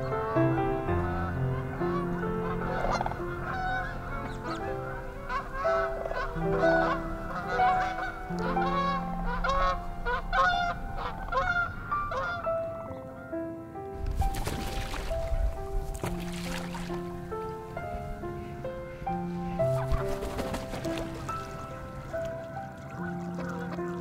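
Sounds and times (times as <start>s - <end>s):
large birds honking: 0.0s - 13.4s, 14.8s - 24.0s
slow piano music: 0.0s - 24.0s.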